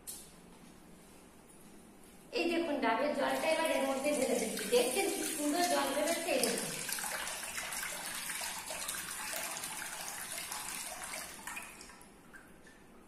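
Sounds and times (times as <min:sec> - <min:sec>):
woman speaking: 0:02.3 - 0:06.8
water trickling into steel bowl: 0:03.3 - 0:12.1.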